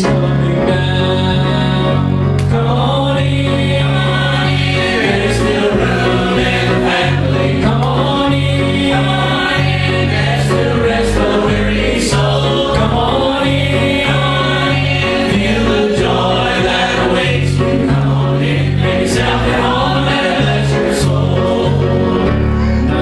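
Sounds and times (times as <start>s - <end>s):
choir singing gospel in harmony: 0.0s - 23.0s
instrumental accompaniment with bass: 0.0s - 23.0s.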